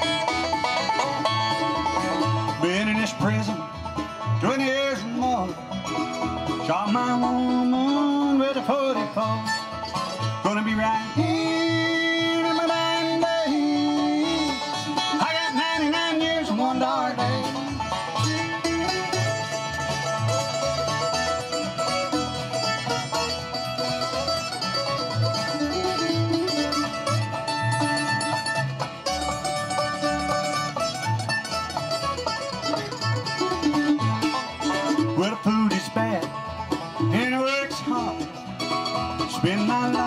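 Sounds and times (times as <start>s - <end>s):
acoustic guitars: 0.0s - 40.0s
banjo: 0.0s - 40.0s
fiddle: 0.0s - 40.0s
mandolin: 0.0s - 40.0s
plucked upright bass: 0.0s - 40.0s.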